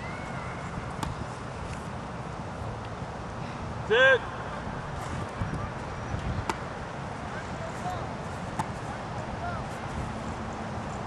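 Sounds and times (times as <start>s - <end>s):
distant voices: 0.0s - 11.0s
low background noise: 0.0s - 11.0s.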